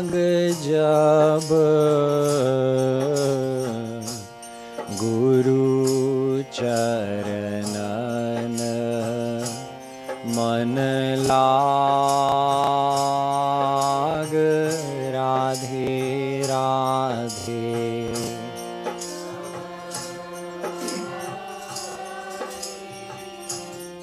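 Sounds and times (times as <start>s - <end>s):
harmonium: 0.0s - 24.0s
light percussion beat: 0.0s - 24.0s
man singing: 0.0s - 24.0s.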